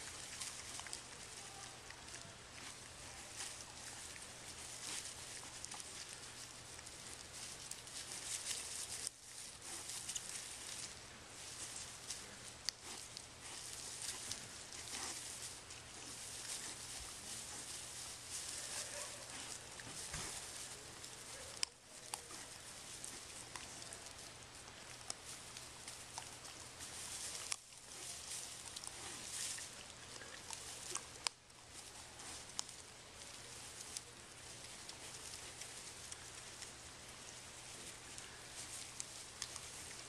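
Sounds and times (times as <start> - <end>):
hog rustling dry grass: 0.0 - 40.0.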